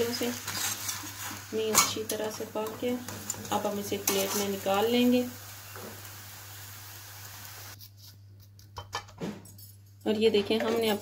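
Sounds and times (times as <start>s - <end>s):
flatbread hissing on hot pan: 4.3s - 7.8s.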